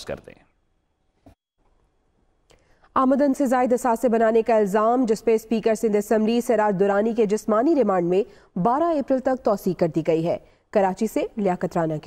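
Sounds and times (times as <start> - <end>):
woman speaking: 3.0 - 12.0.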